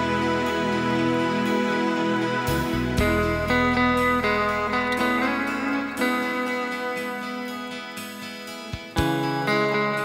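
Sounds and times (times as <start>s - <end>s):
bass line: 0.0s - 5.8s
electric guitar playing: 0.0s - 10.0s.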